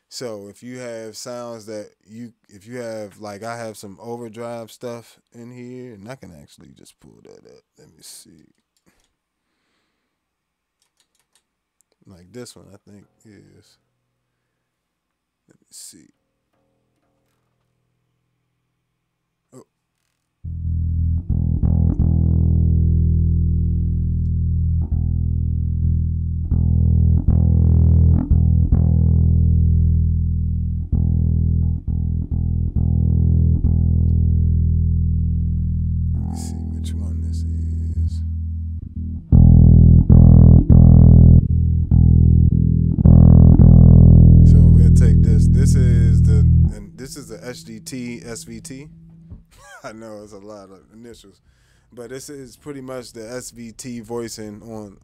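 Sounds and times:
electric bass notes and riffs: 0:20.4 - 0:49.6.

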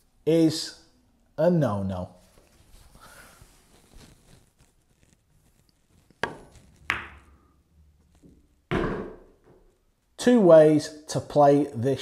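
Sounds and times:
billiard balls clicking: 0:06.1 - 0:08.4
ball dropping into pocket: 0:06.2 - 0:07.4.

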